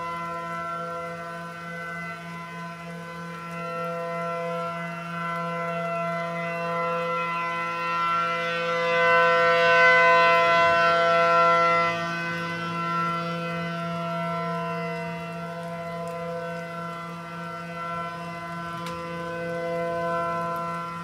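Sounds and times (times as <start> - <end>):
warning siren steady tone: 0.0 - 21.0.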